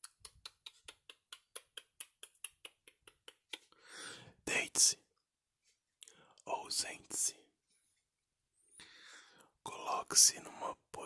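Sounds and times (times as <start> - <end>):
person whispering close-up: 4.4 - 5.2, 6.0 - 7.6, 9.6 - 11.0.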